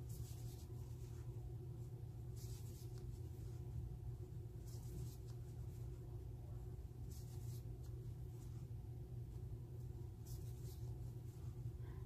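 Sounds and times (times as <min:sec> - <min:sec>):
crochet hook swishing through yarn: 0:00.0 - 0:01.3, 0:10.1 - 0:11.7
steady low hum: 0:00.0 - 0:12.0.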